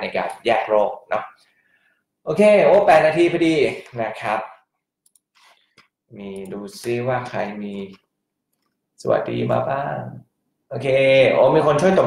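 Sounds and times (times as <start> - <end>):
person speaking: 0.0 - 1.5, 2.2 - 4.7, 6.1 - 8.1, 9.0 - 12.0.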